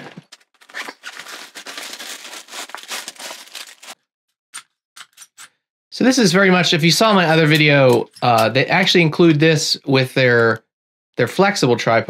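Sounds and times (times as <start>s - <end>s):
plastic packaging rustling: 0.0s - 4.0s.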